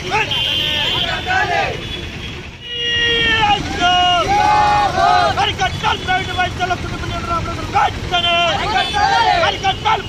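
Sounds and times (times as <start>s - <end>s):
protesters shouting in chorus: 0.0s - 1.8s, 2.6s - 10.0s
street noise: 0.0s - 10.0s.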